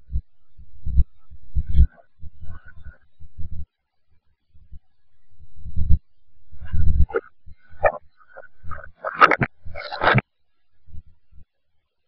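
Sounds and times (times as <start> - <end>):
reversed low rumbles: 0.0 - 3.6, 4.6 - 10.2
reversed garbled voice: 1.7 - 3.0, 6.6 - 10.2.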